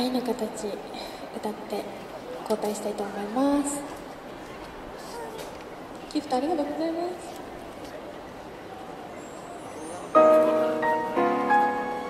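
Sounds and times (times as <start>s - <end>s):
city street hum: 0.0s - 12.0s.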